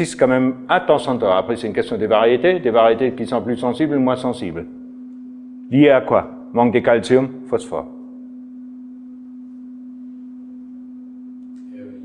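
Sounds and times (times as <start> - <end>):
low electrical tone: 1.0 - 12.0.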